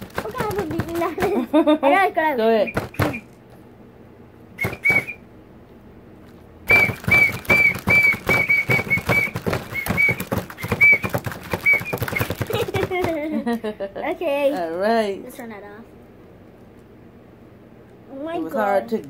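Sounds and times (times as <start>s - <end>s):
toy whistle toots: 4.6s - 5.2s, 6.7s - 12.4s.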